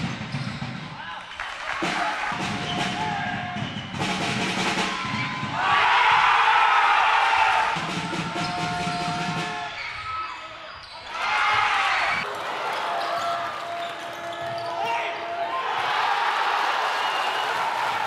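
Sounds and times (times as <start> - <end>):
crowd noise: 0.9 - 18.0.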